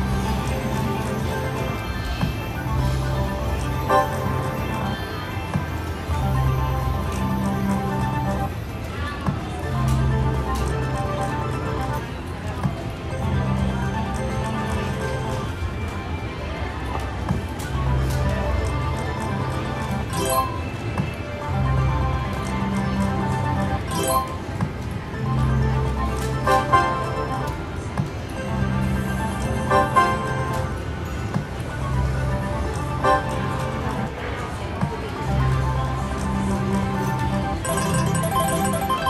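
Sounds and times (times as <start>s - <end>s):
other slot machines: 0.0s - 39.0s
slot machine music and chimes: 2.7s - 4.8s, 19.9s - 20.9s, 22.9s - 24.6s, 25.2s - 27.7s, 28.4s - 31.3s, 32.2s - 33.8s, 36.8s - 39.0s.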